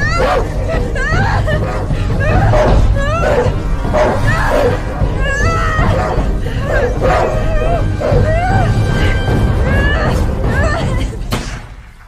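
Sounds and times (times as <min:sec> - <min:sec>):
woman's strained cries: 0:00.0 - 0:11.3.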